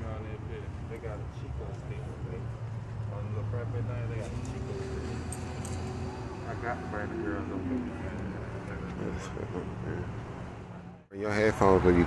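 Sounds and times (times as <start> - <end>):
road traffic engine rumble: 0.0 - 12.0
vehicle passing by: 0.2 - 12.0.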